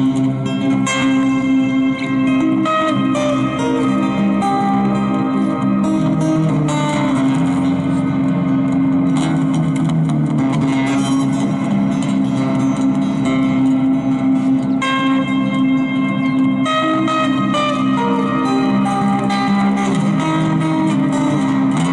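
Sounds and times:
fingerstyle acoustic guitar: 0.0 - 21.9.

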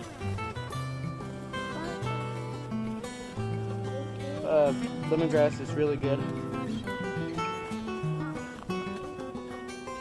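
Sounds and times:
plucked acoustic guitar melody: 0.0 - 10.0.

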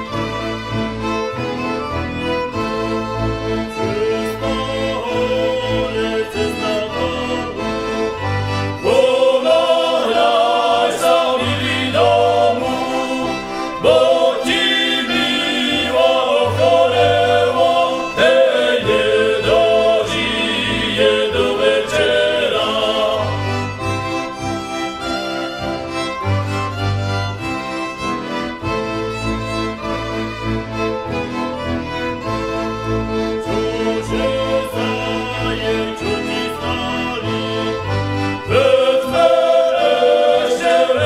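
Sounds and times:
folk music: 0.0 - 41.0.

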